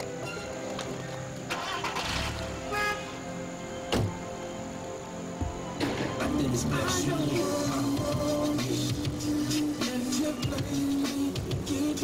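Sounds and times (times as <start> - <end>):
film music: 0.0 - 12.0
car engine starting and running: 1.4 - 2.8.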